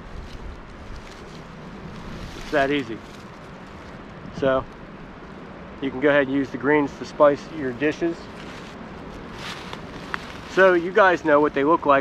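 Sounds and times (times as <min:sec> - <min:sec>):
faint rustles: 0:00.0 - 0:05.3, 0:07.2 - 0:11.6
wind buffeting microphone: 0:04.0 - 0:04.8.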